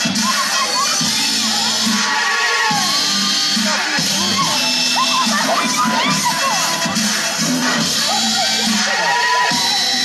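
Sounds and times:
audience cheering and shouting: 0.0s - 10.0s
dubstep music: 0.0s - 10.0s.

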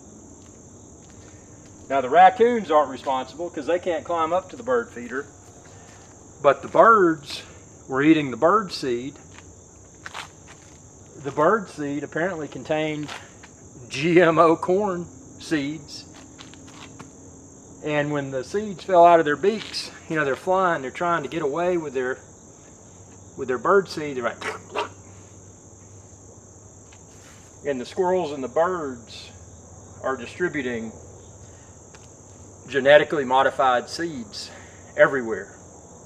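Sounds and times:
insects chirping: 0.0s - 36.0s.

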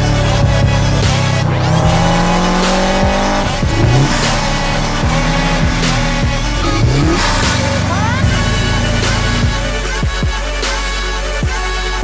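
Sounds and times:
car engine running: 0.0s - 10.8s
music with steady beat: 0.0s - 12.0s.

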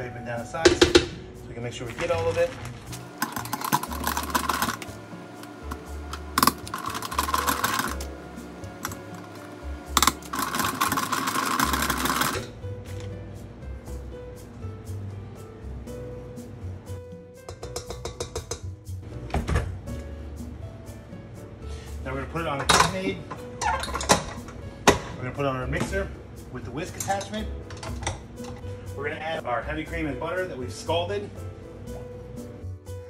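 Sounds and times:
background music: 0.0s - 33.0s
food mill scraping and clicking: 2.0s - 8.1s, 8.8s - 12.6s.

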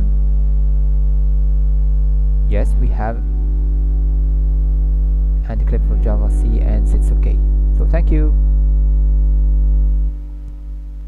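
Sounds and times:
buzzy electrical mains hum: 0.0s - 11.0s.

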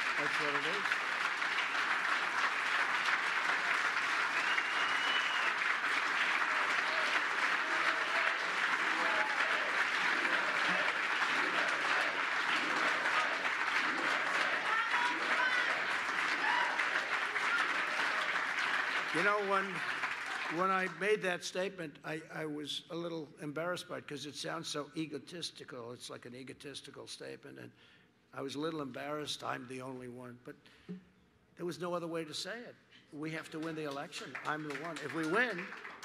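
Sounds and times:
audience applauding: 0.0s - 21.2s, 33.5s - 36.0s.

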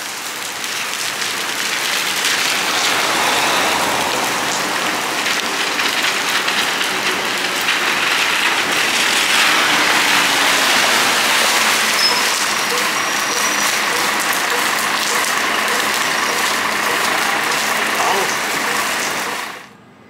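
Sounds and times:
rain on wet pavement: 0.0s - 19.7s
tyres hissing on wet cobblestones: 0.0s - 19.8s
city bus: 0.0s - 20.0s.

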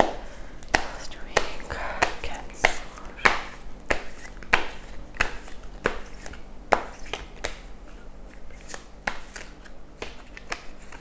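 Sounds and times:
cards being shuffled by hand: 1.4s - 11.0s.

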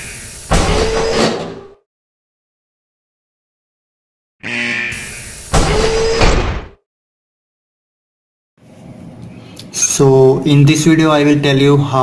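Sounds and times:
heavy metal doors clanging shut: 0.5s - 1.8s.

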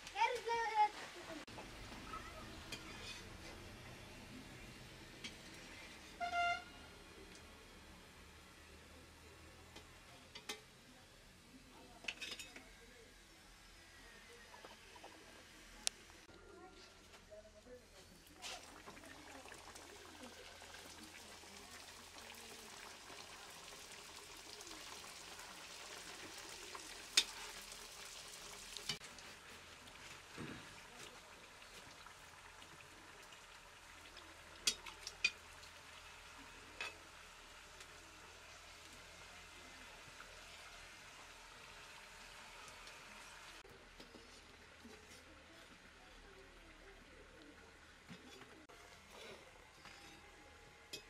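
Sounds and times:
donuts sizzling in hot oil: 0.0s - 16.3s, 17.8s - 51.0s
oil popping: 18.3s - 29.3s.

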